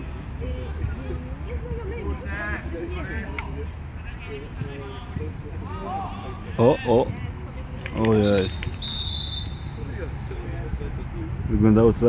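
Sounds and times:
high steady whistle tone: 8.3s - 9.8s.

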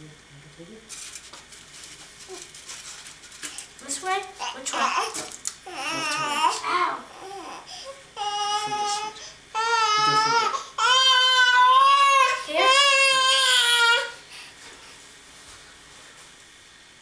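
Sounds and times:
child's high wavering voice: 5.8s - 7.6s, 9.9s - 14.1s.

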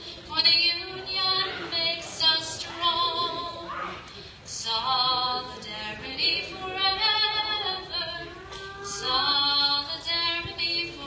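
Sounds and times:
woman singing unaccompanied: 0.2s - 3.8s, 4.5s - 11.0s.

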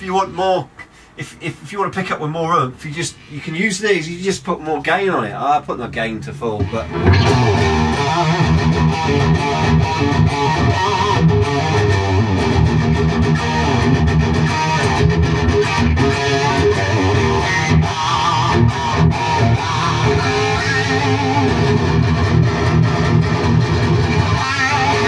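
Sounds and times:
overdriven electric guitar lead: 6.6s - 25.0s.

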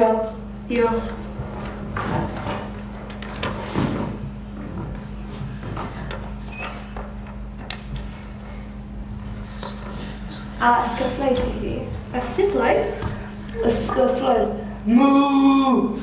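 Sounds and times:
low electrical hum: 0.0s - 16.0s
soft knocks and rustles: 1.1s - 8.4s.

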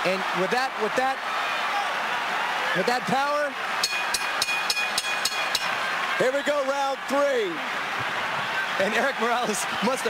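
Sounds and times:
arena crowd noise: 0.0s - 10.0s
boxing ring bell ringing: 3.8s - 5.7s.

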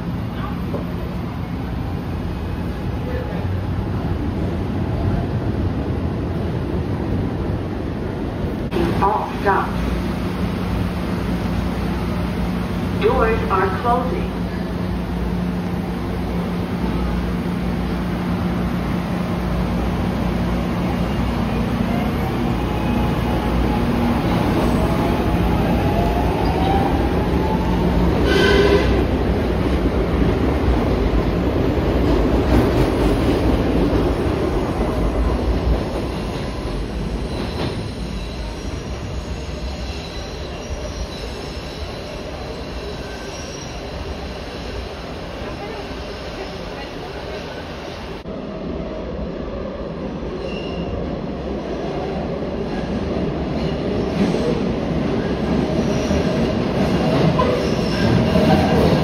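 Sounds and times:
train cars rumbling: 0.0s - 48.8s, 50.1s - 59.0s
high squeal: 37.2s - 45.0s.

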